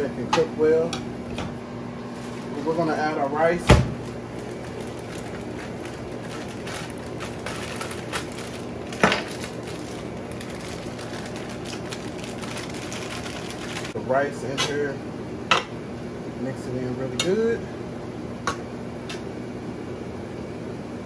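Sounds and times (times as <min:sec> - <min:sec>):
fan hum: 0:00.0 - 0:21.0.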